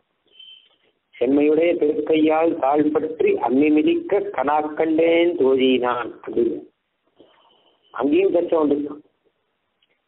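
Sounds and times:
faint thin high tone: 0.3s - 0.8s.

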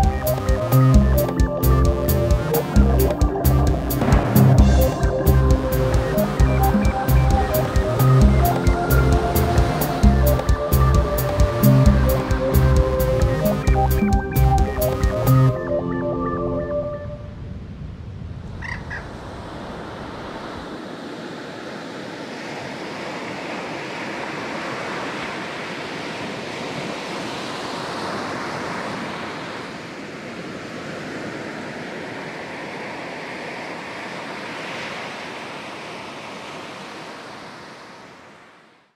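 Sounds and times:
waves breaking on beach: 19.0s - 38.9s.

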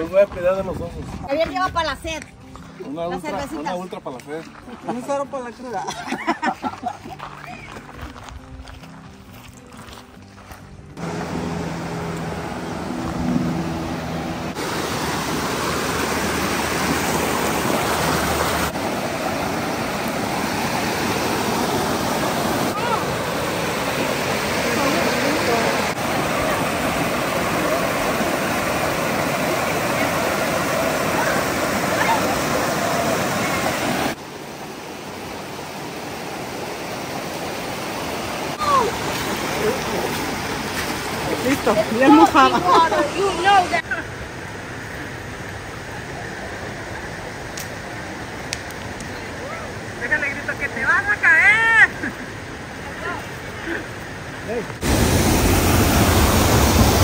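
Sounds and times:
quiet background music: 0.0s - 14.2s
rocky creek rushing: 10.9s - 57.0s.

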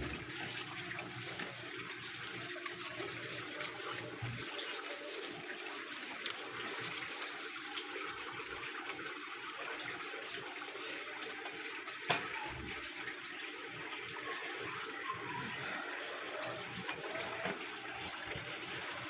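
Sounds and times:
running water trickling and splashing: 0.0s - 19.0s.

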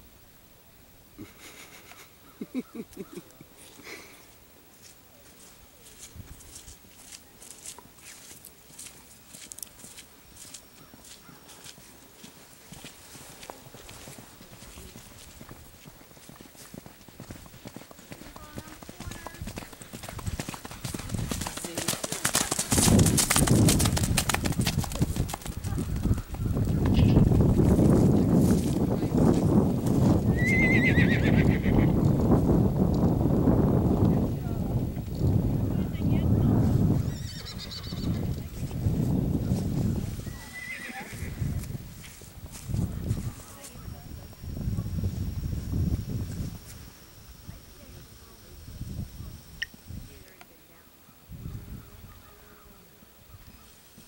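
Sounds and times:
horse hoofbeats on ground: 5.9s - 33.2s
horse whinnying: 30.3s - 32.0s, 37.1s - 38.2s, 40.3s - 41.4s.

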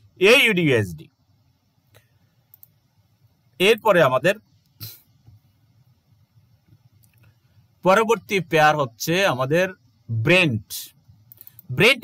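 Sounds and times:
faint computer mouse clicks: 1.9s - 2.8s, 11.3s - 11.7s.

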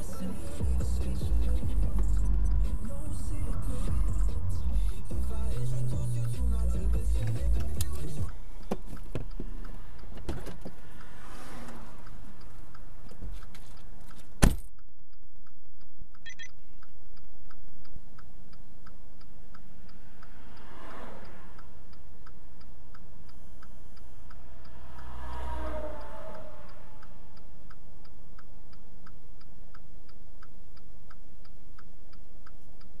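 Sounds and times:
turn signal clicking: 0.0s - 33.0s
vehicles passing by: 0.0s - 33.0s.

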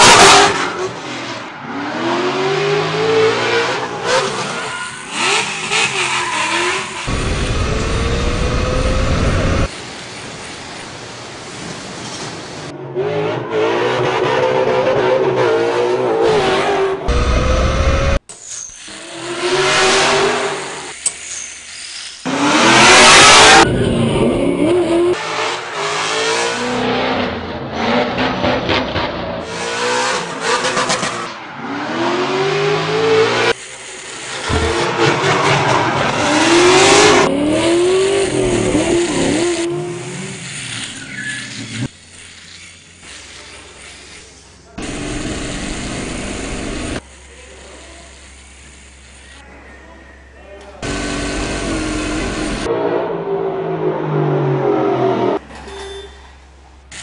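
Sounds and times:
car engine revving: 0.0s - 9.7s, 12.9s - 18.2s, 22.3s - 33.6s, 34.4s - 40.9s, 50.8s - 55.4s
tyre squeal: 4.2s - 7.0s, 18.4s - 19.0s, 40.7s - 41.9s, 55.5s - 56.4s.

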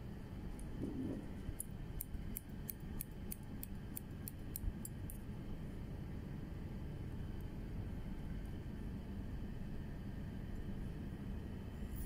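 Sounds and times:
scissors snipping hair: 1.6s - 5.2s.

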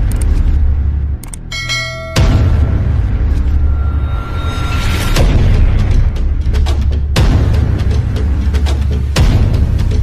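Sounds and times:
bright bell ding: 1.5s - 2.9s.

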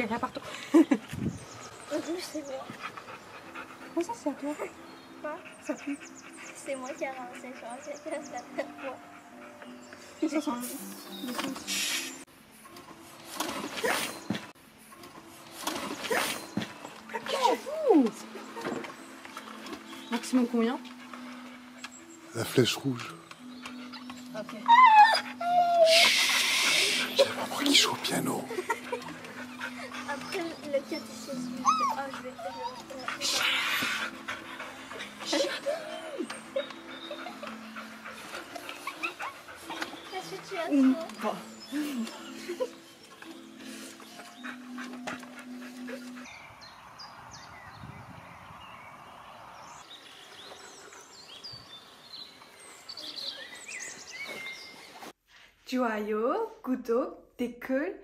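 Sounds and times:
birds chirping and singing: 0.0s - 55.1s
steady outdoor hiss: 0.0s - 55.2s
air hissing from tyre pump: 11.7s - 12.3s, 25.9s - 27.2s
dog whining: 23.1s - 27.7s, 28.8s - 42.7s.

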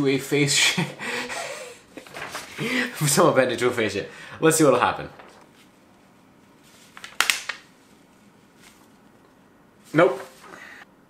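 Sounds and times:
paper rustling: 2.0s - 2.7s, 5.0s - 5.8s, 6.5s - 9.2s, 9.8s - 10.6s.

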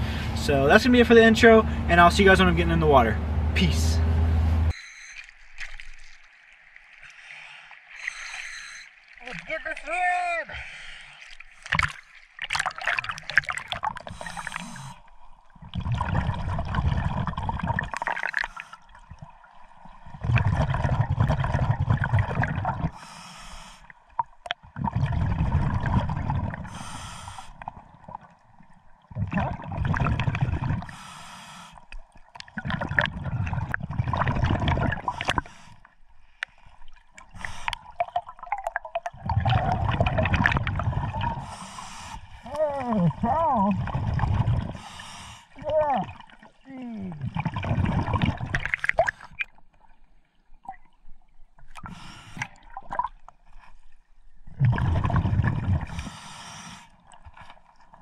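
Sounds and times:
exhaust bubbles rushing: 15.6s - 18.4s, 20.1s - 22.9s, 24.7s - 26.7s, 29.1s - 30.9s, 32.5s - 35.3s, 38.2s - 41.5s, 43.1s - 44.8s, 47.2s - 49.1s, 54.6s - 56.0s
regulator inhale hiss: 23.0s - 23.9s, 26.7s - 27.6s, 30.9s - 31.8s, 56.0s - 57.0s.

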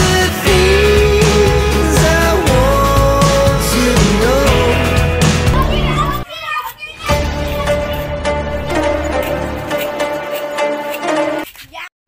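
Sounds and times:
loud background music: 0.0s - 6.2s, 7.1s - 11.4s
children shouting and cheering: 5.3s - 8.3s.

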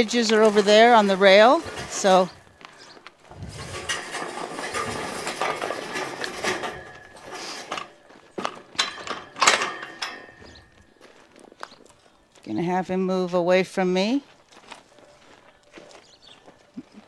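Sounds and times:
horse tack rattling and clinking: 0.0s - 12.6s.

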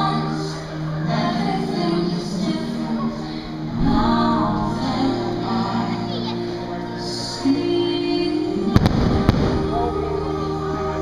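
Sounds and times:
fireworks show music: 0.6s - 7.6s, 8.3s - 11.0s.

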